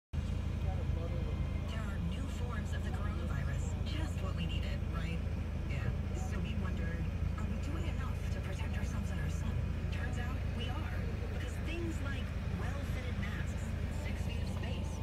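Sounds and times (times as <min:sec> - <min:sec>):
car engine rumble: 0:00.2 - 0:15.0
quiet voices talking: 0:00.2 - 0:15.0.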